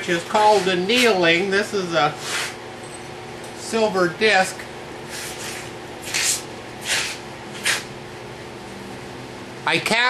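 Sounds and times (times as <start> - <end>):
scratchy swishes: 5.1 - 7.9.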